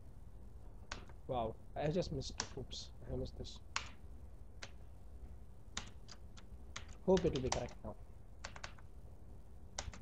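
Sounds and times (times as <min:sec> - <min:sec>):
faint low hum: 0:00.0 - 0:10.0
keyboard key clicks: 0:05.8 - 0:07.8, 0:08.4 - 0:08.8.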